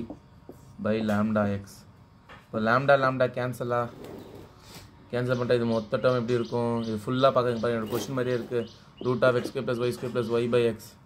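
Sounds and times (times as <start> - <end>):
man speaking: 5.1 - 11.0.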